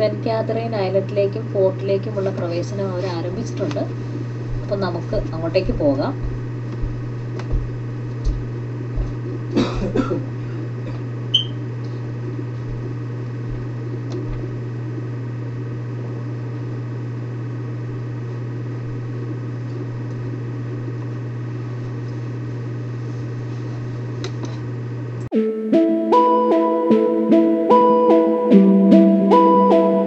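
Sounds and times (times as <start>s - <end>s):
steady low hum: 0.0s - 25.3s
music with plucked notes: 25.3s - 30.0s.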